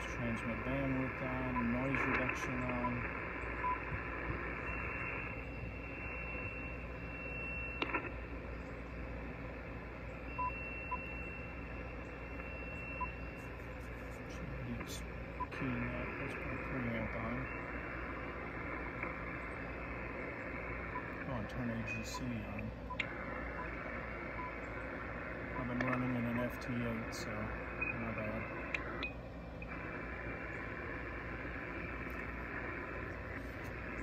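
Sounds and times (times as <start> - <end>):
radio static hiss: 0.0 - 34.0
short touchscreen beeps: 10.3 - 14.1.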